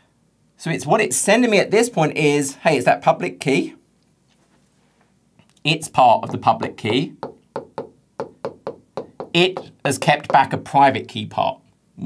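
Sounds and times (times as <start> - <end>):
stylus tapping on touchscreen: 6.2 - 10.6.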